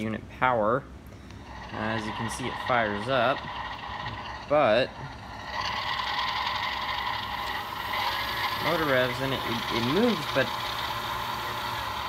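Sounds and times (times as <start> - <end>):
model locomotive motor whining: 1.3 - 12.0.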